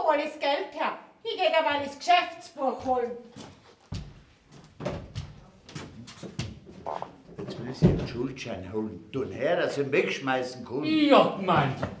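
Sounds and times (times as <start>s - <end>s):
footsteps on wooden stage: 2.8s - 8.1s.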